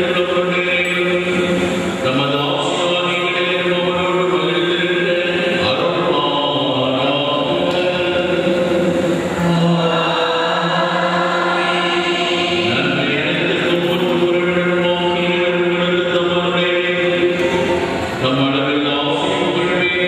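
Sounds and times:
voices singing chant: 0:05.5 - 0:15.1.

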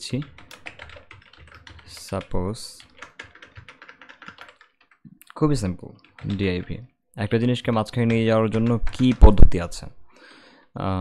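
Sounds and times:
computer keyboard typing: 0:00.0 - 0:05.1, 0:05.8 - 0:09.8.

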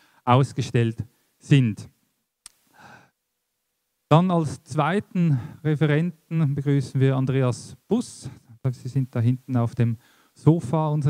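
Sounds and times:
mouth click: 0:02.4 - 0:02.6
soft breath: 0:02.7 - 0:03.2, 0:10.0 - 0:10.4
person speaking: 0:04.1 - 0:11.0.

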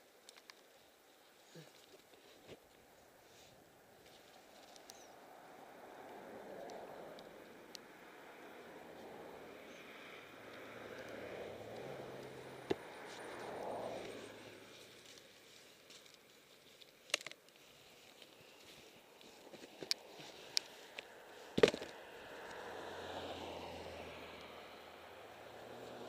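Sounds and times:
highway traffic passing: 0:03.0 - 0:16.6, 0:17.6 - 0:26.0.

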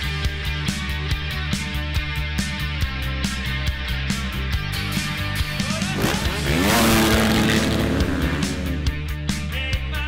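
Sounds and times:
rock music: 0:00.0 - 0:10.0
motocross bikes accelerating: 0:05.4 - 0:09.2.

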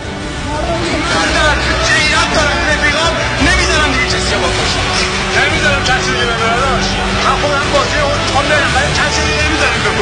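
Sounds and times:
steady low drone: 0:00.0 - 0:10.0
overlapping voices: 0:00.4 - 0:10.0.

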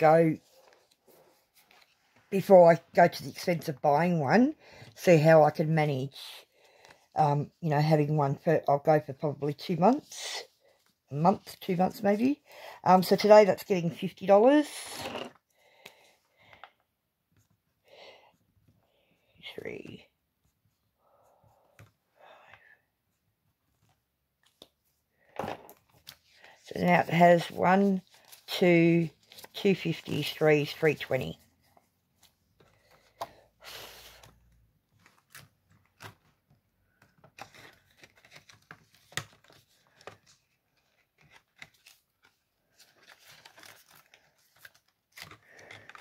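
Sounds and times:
plastic sleeves crinkling: 0:37.3 - 0:46.0.

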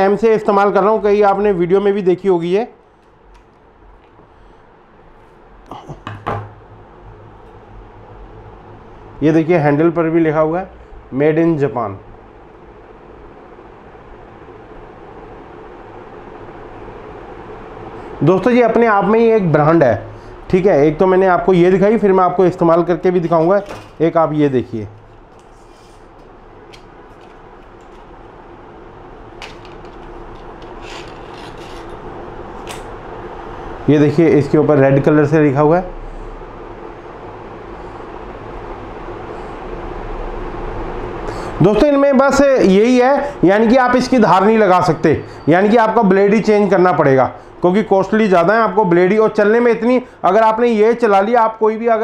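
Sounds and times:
background hum and hiss: 0:00.0 - 0:52.0.

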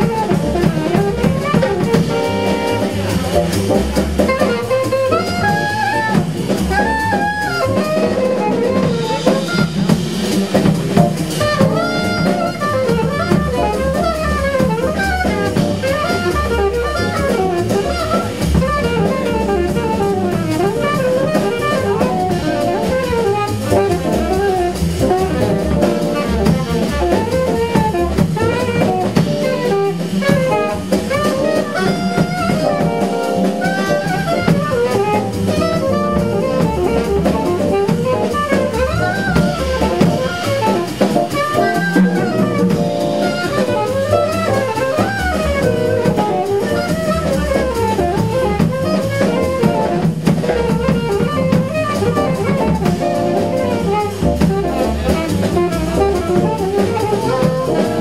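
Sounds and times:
bass: 0:00.0 - 0:58.0
drum kit: 0:00.0 - 0:58.0
saxophone solo: 0:00.0 - 0:58.0.

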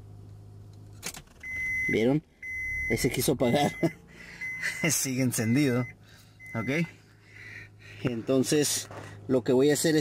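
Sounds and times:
car engine idling: 0:00.0 - 0:10.0
electronic warning beep: 0:01.4 - 0:06.9.

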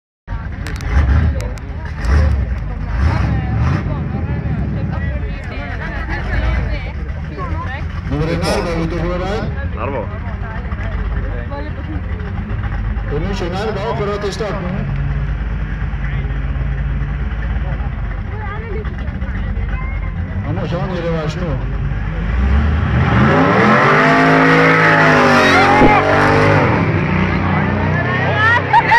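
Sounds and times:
faint voices: 0:00.3 - 0:22.6, 0:24.3 - 0:28.9
car engines revving: 0:00.3 - 0:28.9.

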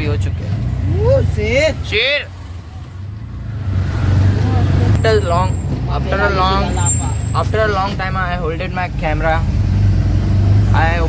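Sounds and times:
auto-rickshaw engine rumble: 0:00.0 - 0:11.0
road noise: 0:00.0 - 0:11.0.

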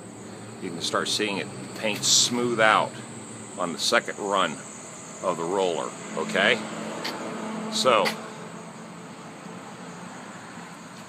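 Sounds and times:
outdoor hiss: 0:00.0 - 0:11.0.

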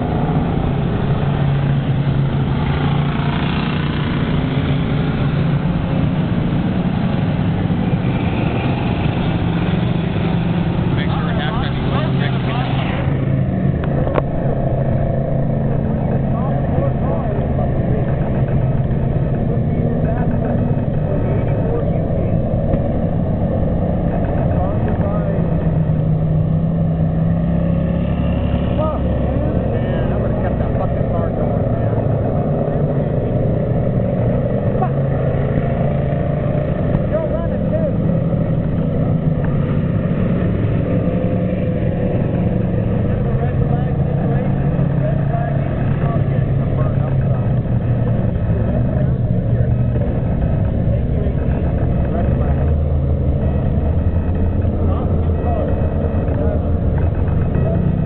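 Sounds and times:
race car engines: 0:00.0 - 0:58.0
voices: 0:00.0 - 0:58.0.

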